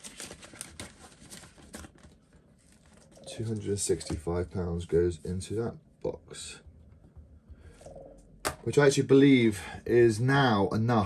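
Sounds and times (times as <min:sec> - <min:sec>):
crinkly plastic rustling: 0:00.0 - 0:03.8.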